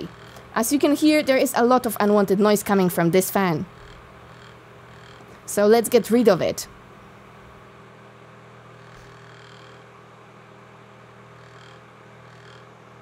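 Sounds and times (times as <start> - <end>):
electric fan whirring: 0.0 - 13.0.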